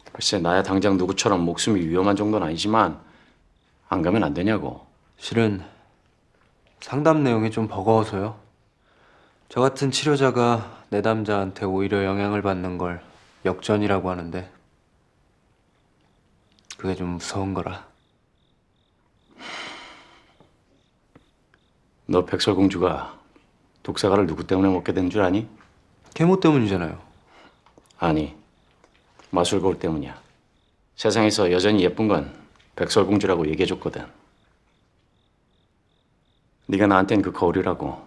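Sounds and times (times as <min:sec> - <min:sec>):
crickets chirping: 0:00.0 - 0:38.0.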